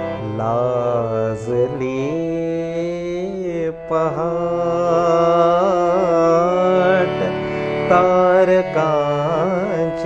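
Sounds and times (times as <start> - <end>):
harmonium sustaining notes: 0.0 - 10.0
man singing: 0.0 - 10.0.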